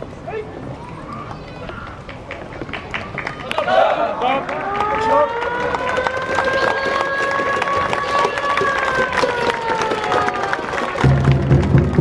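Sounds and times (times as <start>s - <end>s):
people clapping: 1.8s - 12.0s.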